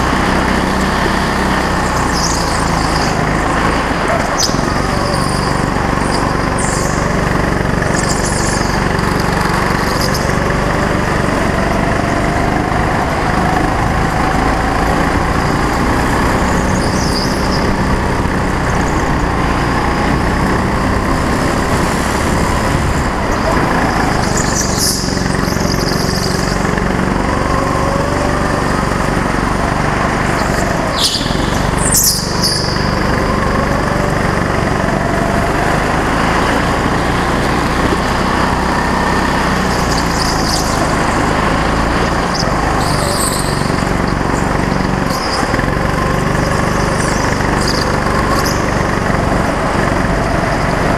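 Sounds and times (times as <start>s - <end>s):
go-kart engine revving: 0.0s - 50.9s.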